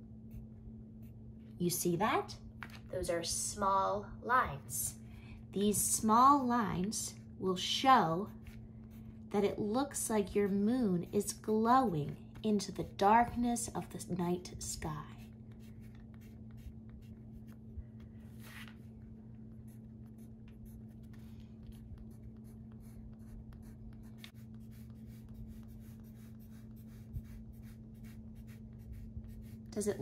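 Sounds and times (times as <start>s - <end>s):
low steady hum: 0.0s - 30.0s
pencil scratching on paper: 15.2s - 17.6s, 19.6s - 30.0s.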